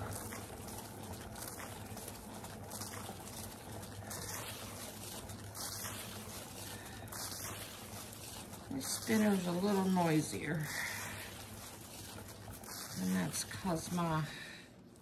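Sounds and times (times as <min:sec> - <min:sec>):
turntable spinning hum: 0:00.0 - 0:15.0.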